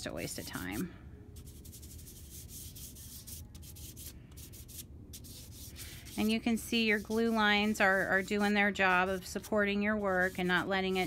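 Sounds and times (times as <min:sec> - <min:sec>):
fingertips rubbing pastel on paper: 0:01.4 - 0:11.0.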